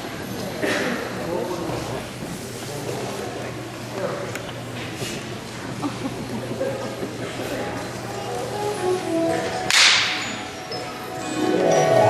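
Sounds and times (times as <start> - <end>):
christmas song accompaniment: 8.0 - 12.0
soft musical notes: 8.1 - 12.0.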